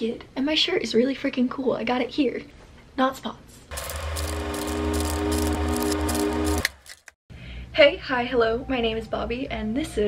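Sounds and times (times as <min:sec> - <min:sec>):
low hum: 0:03.7 - 0:07.0
fast mechanical rattle: 0:03.7 - 0:07.2.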